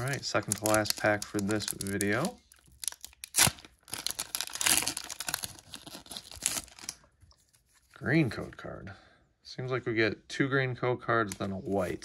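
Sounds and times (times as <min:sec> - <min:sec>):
foil wrapper ripping: 0:00.0 - 0:07.0
foil crinkling: 0:00.0 - 0:07.9.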